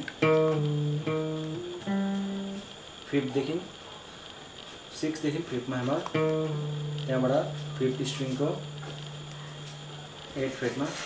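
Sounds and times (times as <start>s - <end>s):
acoustic guitar notes: 0.0s - 2.8s, 5.8s - 11.0s.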